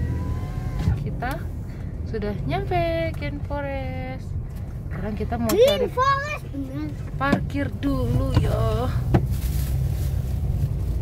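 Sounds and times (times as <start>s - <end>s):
car driving low rumble: 0.0s - 11.0s.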